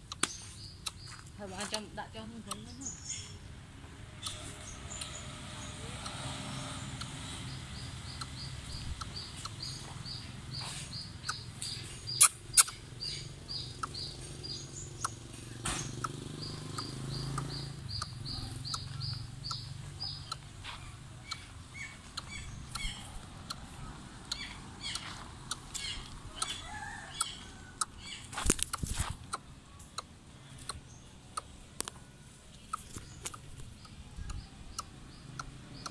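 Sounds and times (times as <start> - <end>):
bird chirping: 0.0 - 35.9.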